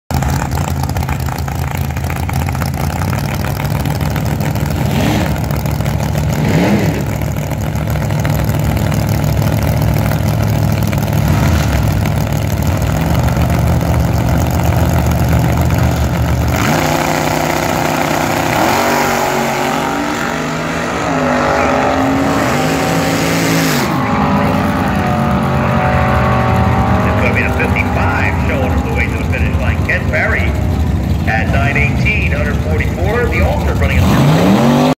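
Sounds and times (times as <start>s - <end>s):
drag racing cars engines: 0.1s - 34.9s.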